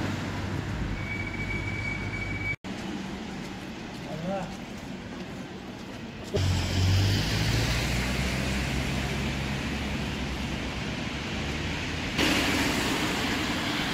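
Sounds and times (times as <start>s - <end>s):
car engine rumble: 4.8s - 13.9s
tyres hissing on wet road: 6.3s - 13.9s.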